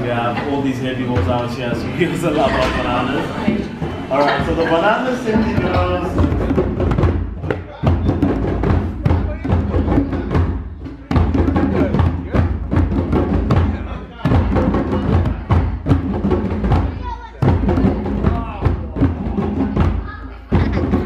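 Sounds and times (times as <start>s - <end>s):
hand drumming on djembe: 0.0s - 21.0s.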